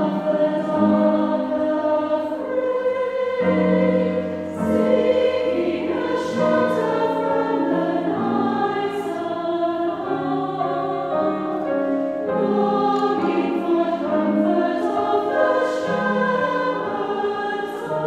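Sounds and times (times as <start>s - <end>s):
mixed choir singing a hymn: 0.0s - 18.0s.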